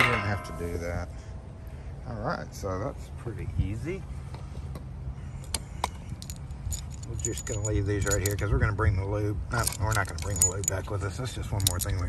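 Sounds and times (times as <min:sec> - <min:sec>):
steady low rumble: 0:00.0 - 0:12.0
light metallic clicks and clinks: 0:05.4 - 0:08.7, 0:09.5 - 0:12.0.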